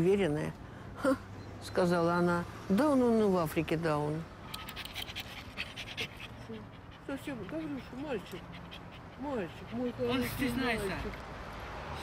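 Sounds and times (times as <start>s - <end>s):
dog panting rapidly: 4.5s - 11.2s.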